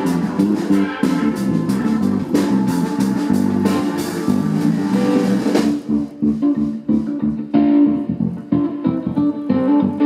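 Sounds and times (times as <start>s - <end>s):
drum kit with cymbal hits: 0.0s - 7.8s
bass guitar: 0.0s - 10.0s
electric guitar: 0.0s - 10.0s.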